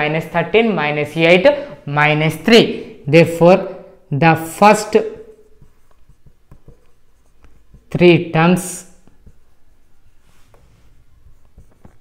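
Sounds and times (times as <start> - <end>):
marker writing on whiteboard: 4.3 - 12.0.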